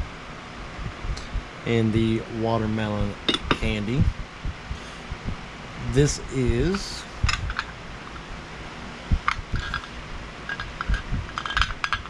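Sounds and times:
metal mold plates clinking: 9.3s - 12.0s.

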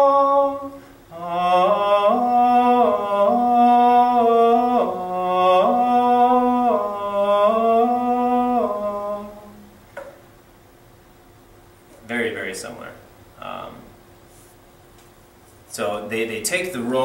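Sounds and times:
man chanting solo: 0.0s - 9.7s.

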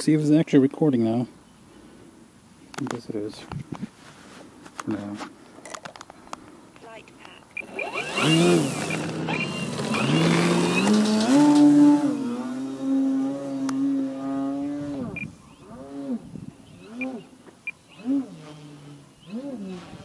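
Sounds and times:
model plane motor and propeller: 6.8s - 15.2s.

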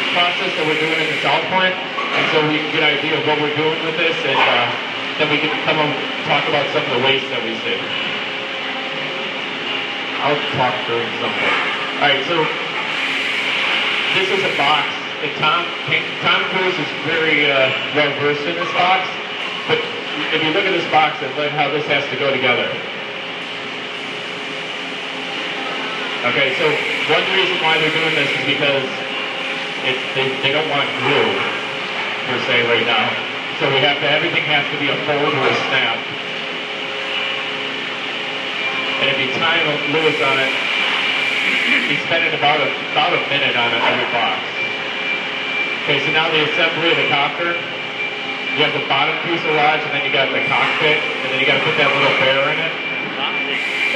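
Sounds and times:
continuous mechanical whir: 0.0s - 53.9s
faint hum: 0.0s - 53.9s.

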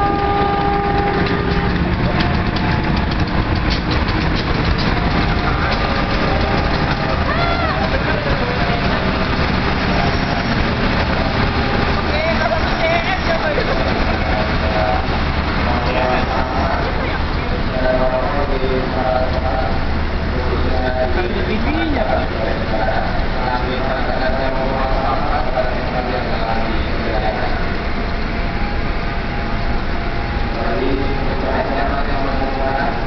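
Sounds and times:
low locomotive engine hum: 0.0s - 33.0s
train coaches rolling on rails: 0.0s - 33.0s.

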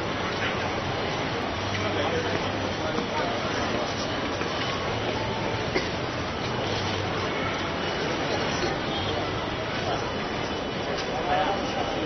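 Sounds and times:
city street rumble and hiss: 0.0s - 12.0s.

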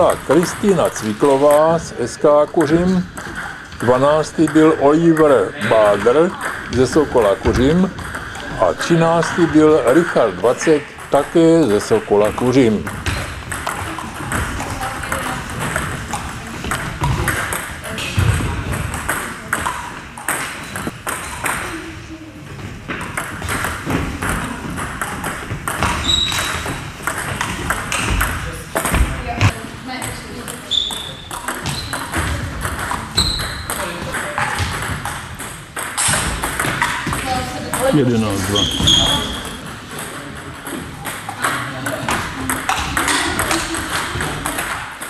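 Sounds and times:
voices talking: 0.0s - 20.9s
table tennis ball clicking: 12.3s - 21.7s, 23.2s - 29.0s.

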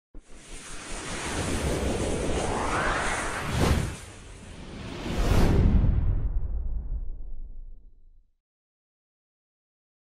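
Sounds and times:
rushing whoosh: 0.3s - 7.2s.

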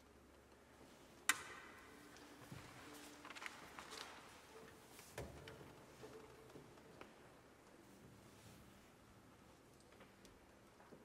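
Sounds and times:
sharp click ringing in hall: 1.2s - 2.3s.

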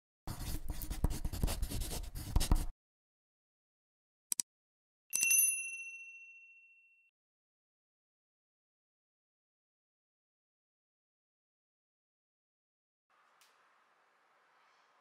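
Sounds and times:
pen scratching on paper: 0.3s - 2.7s
bell-like notification ding: 5.2s - 7.1s.

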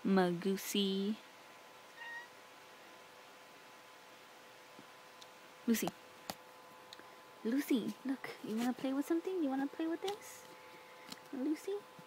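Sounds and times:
cat meowing: 2.0s - 2.4s.

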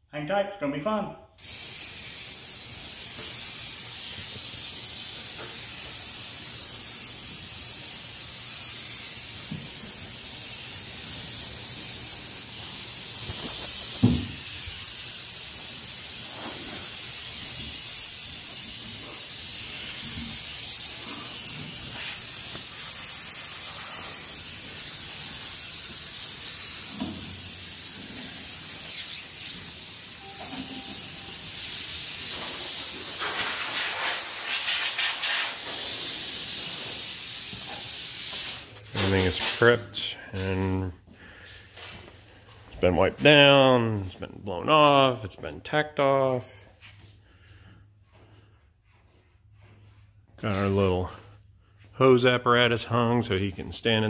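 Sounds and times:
compressed air hissing: 1.4s - 42.6s.

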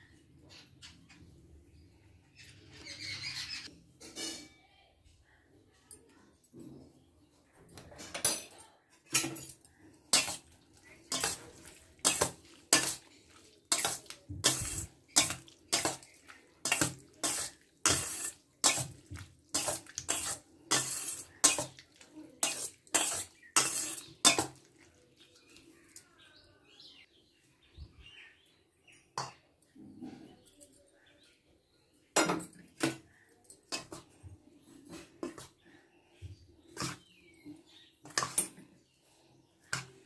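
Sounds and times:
metal spoon scraping steel bowl: 10.1s - 24.6s.

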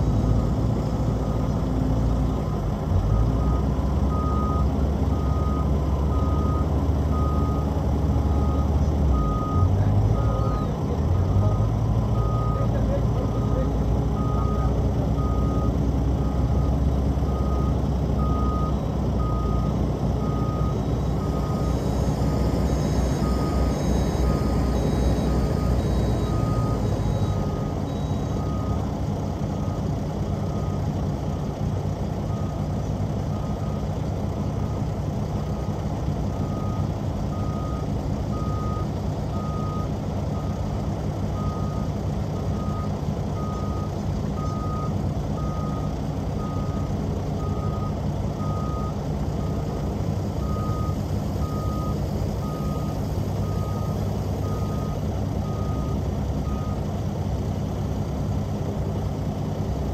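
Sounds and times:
diesel engines running: 0.0s - 59.9s
reverse alarm beeping: 3.4s - 11.6s, 17.3s - 28.9s, 50.4s - 56.8s.

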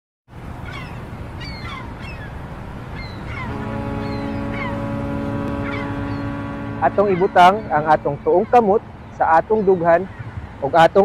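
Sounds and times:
birds chirping: 0.6s - 11.0s
ship's horn blast: 3.4s - 9.0s.

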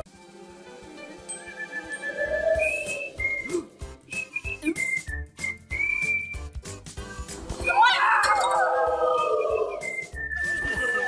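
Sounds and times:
cartoon background music: 0.0s - 11.0s
whistled tune: 1.3s - 11.0s.

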